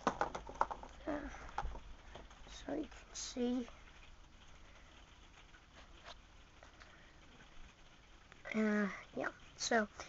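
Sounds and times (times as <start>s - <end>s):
toy packaging clicks and taps: 0.0s - 2.3s.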